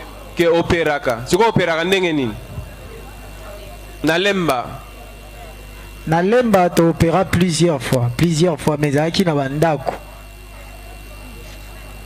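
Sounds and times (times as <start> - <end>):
steady low hum: 0.0 - 12.0
man speaking into a microphone: 0.4 - 2.4, 4.0 - 4.9, 6.0 - 9.9.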